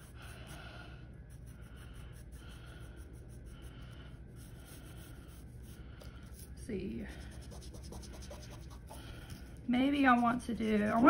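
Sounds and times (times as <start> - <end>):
pencil scratching on paper: 0.0 - 0.6, 1.3 - 6.5, 7.1 - 11.0.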